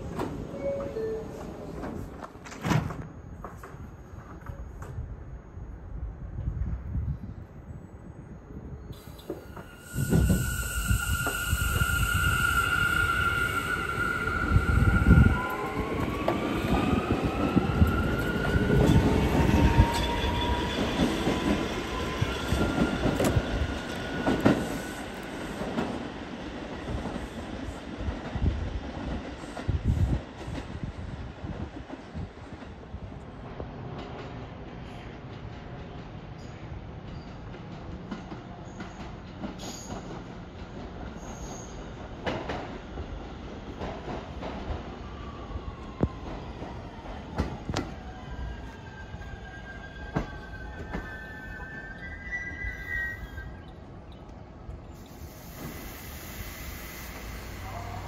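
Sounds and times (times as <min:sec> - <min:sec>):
subway train rumble: 0:00.0 - 0:58.0
wheels squealing on rails: 0:08.8 - 0:25.8, 0:38.6 - 0:40.3, 0:41.0 - 0:42.0, 0:47.3 - 0:54.3, 0:54.9 - 0:58.0.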